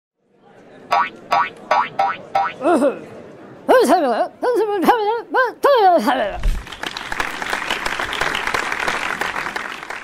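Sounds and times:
quick plucked notes: 0:00.9 - 0:02.7.

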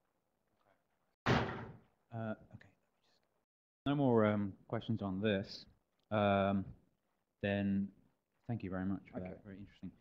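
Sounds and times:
sudden thump on microphone: 0:01.2 - 0:01.8.

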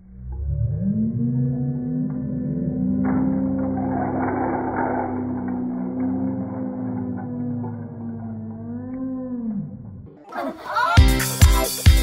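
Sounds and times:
wooden planks clattering: 0:02.9 - 0:08.6.

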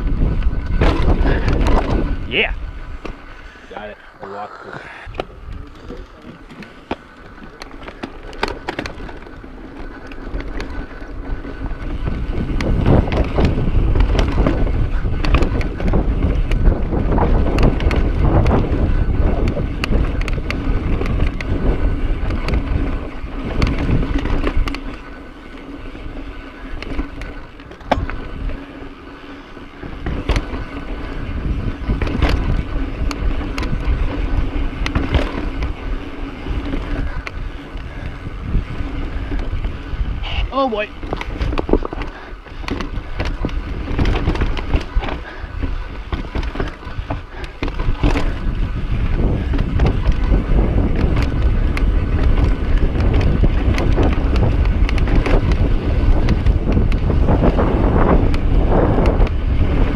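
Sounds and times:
bike knocking and rattling: 0:00.0 - 0:04.2, 0:05.0 - 0:59.9
bike tyre rumble on rock: 0:00.0 - 0:59.9.

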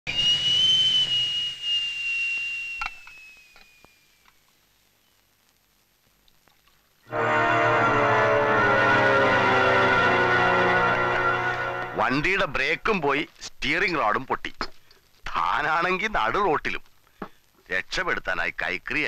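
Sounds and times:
kettle whistling: 0:00.1 - 0:04.5
background music: 0:07.1 - 0:12.8.

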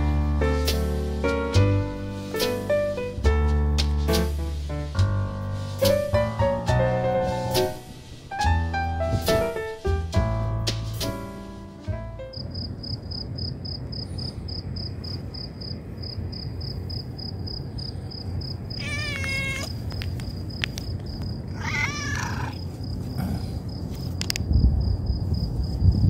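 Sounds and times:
cricket chirping: 0:12.3 - 0:26.0
cat meowing: 0:18.8 - 0:19.8, 0:21.5 - 0:22.6.

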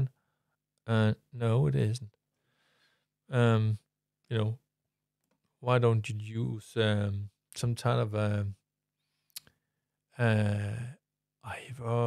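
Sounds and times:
man's voice: 0:03.3 - 0:04.6, 0:11.5 - 0:12.0.

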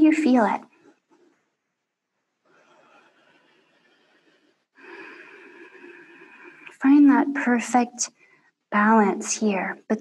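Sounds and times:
person breathing: 0:02.4 - 0:06.8.

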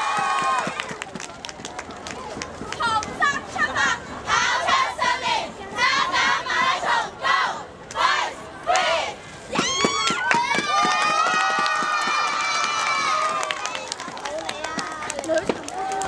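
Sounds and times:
cheerleaders chanting in unison: 0:02.9 - 0:09.2.

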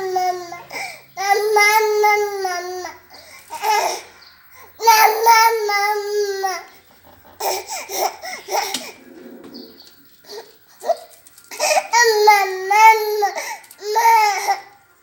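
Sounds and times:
baby babbling: 0:04.8 - 0:06.7
baby laughing: 0:07.4 - 0:09.0, 0:10.2 - 0:14.6.

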